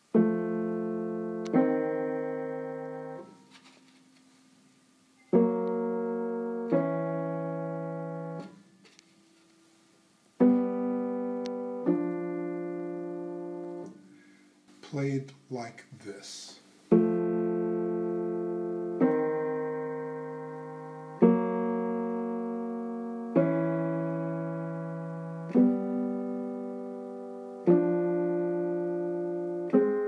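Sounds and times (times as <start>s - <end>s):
upright piano intervals: 0.0s - 30.0s.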